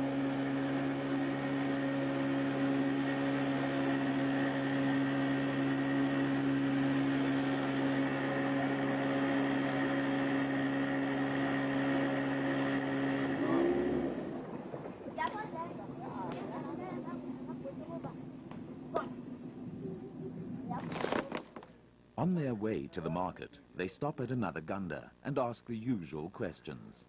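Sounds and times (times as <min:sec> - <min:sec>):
boat engine running: 0:00.0 - 0:22.3.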